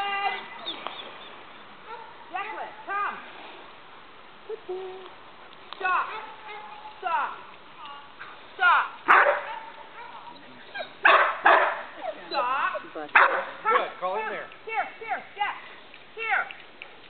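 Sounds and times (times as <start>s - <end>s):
dog barking and yipping: 1.9s - 2.2s, 9.1s - 12.0s, 13.2s - 14.0s.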